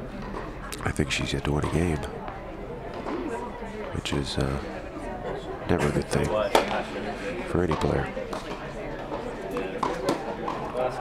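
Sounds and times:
tennis ball hit and bouncing: 7.7 - 8.7, 9.5 - 10.8.

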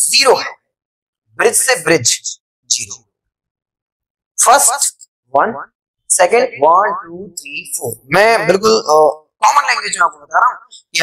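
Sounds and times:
man speaking: 1.4 - 3.1, 6.1 - 11.0.

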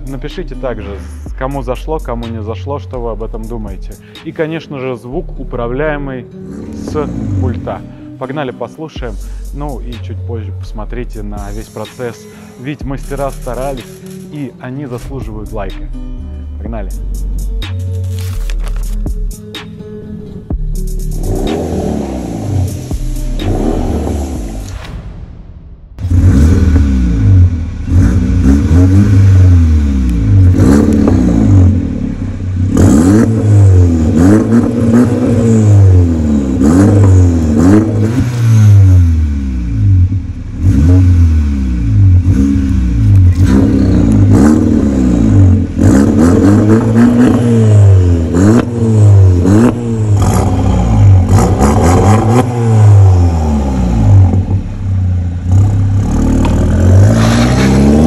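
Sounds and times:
car engine revving: 6.3 - 8.1, 19.6 - 58.0.

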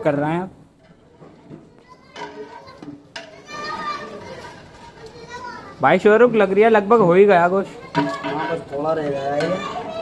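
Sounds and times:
people and children talking: 0.0 - 10.0.

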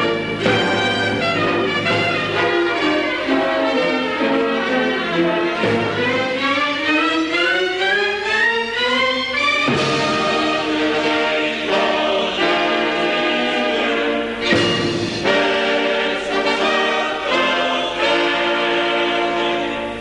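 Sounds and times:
orchestra with bowed strings: 0.0 - 20.0.

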